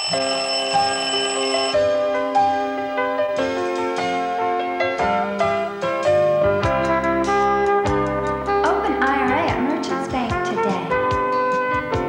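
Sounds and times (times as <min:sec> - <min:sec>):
alarm clock ringing: 0:00.0 - 0:02.1
soft keyboard music: 0:00.0 - 0:12.0.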